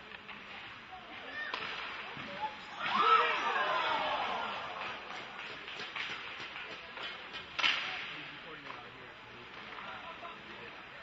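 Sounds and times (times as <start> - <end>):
hockey stick or puck crack: 1.4 - 3.2, 4.4 - 8.9.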